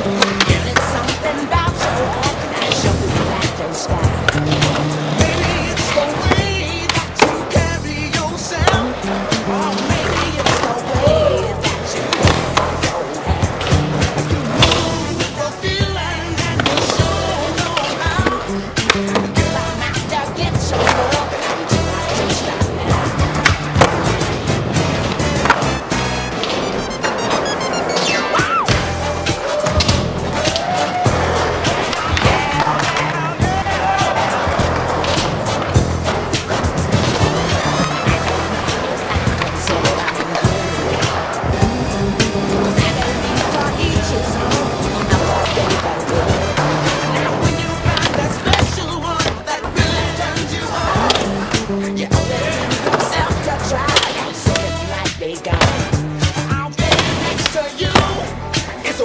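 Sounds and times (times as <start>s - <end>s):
background music with steady beat: 0.0s - 59.0s
skateboard clacks and knocks: 0.0s - 59.0s
skateboard wheels rolling on concrete: 0.0s - 59.0s.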